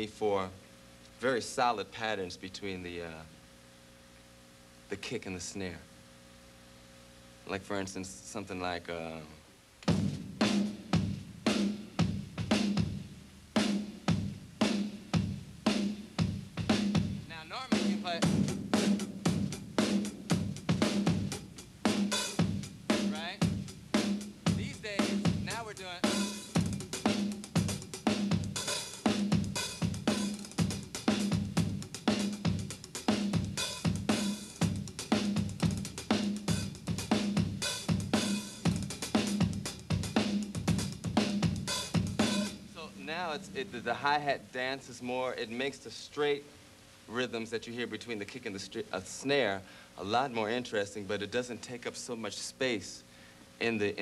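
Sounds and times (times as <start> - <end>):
hi-hat strokes: 15.7 - 45.9.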